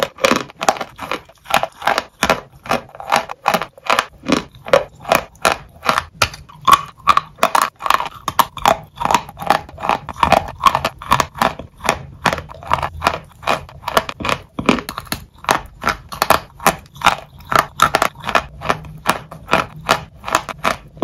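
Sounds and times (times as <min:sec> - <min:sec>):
dry crunchy chewing: 0:00.0 - 0:21.0.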